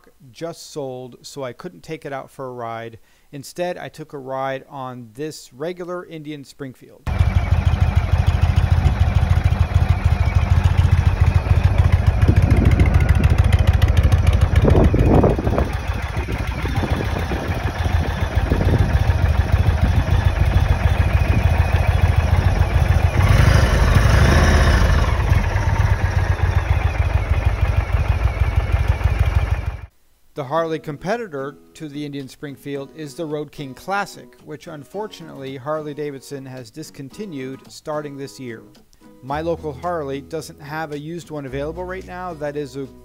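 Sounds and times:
motorcycle engine idling: 0:07.1 - 0:29.9.

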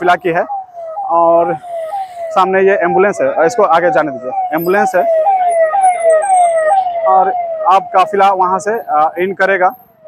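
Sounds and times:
emergency vehicle siren wailing: 0:00.0 - 0:10.0.

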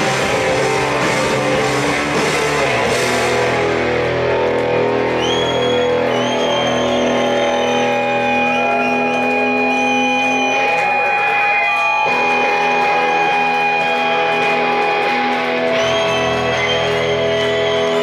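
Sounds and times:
electric guitars ringing chords: 0:00.0 - 0:18.0.

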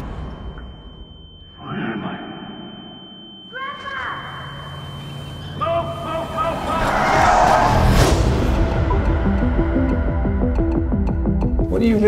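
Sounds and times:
loud rushing noise: 0:06.5 - 0:09.8.

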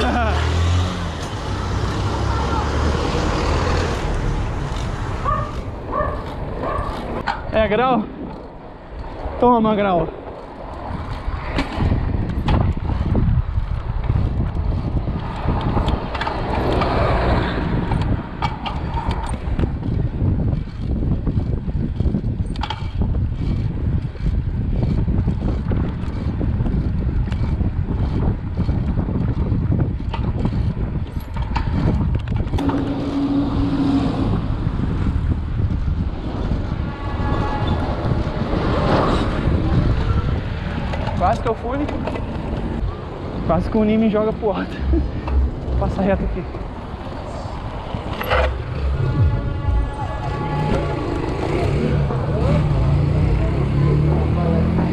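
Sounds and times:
wind buffeting microphone: 0:00.0 - 0:54.9
bike clicks and rattles: 0:03.3 - 0:33.2, 0:37.3 - 0:49.0
steady tone: 0:32.6 - 0:38.2, 0:45.0 - 0:53.9.

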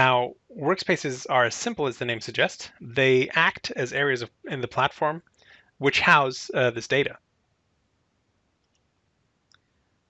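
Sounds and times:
spoken word: 0:00.0 - 0:05.2, 0:05.8 - 0:07.2.

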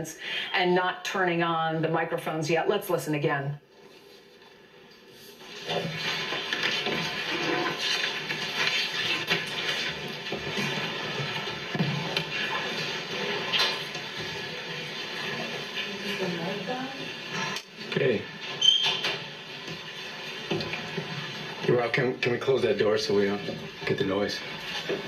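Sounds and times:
steady hiss-like din: 0:05.1 - 0:25.0.

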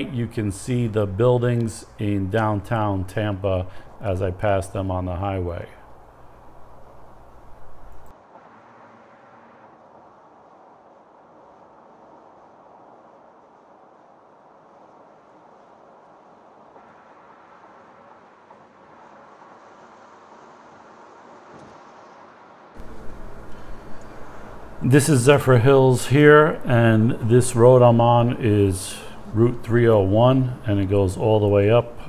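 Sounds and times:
car road and tyre noise: 0:05.9 - 0:31.9.

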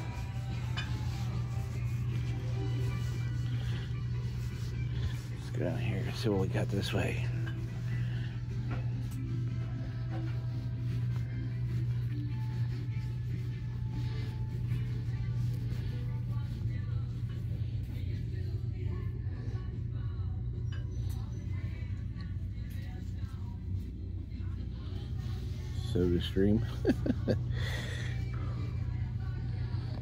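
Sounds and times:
quiet background music: 0:00.0 - 0:30.0
steady low hum: 0:00.0 - 0:30.0.

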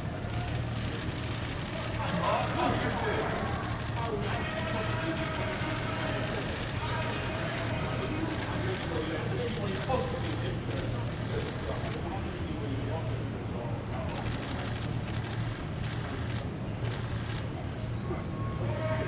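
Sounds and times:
distant men talking: 0:00.0 - 0:19.0
low street hum: 0:00.0 - 0:19.0.

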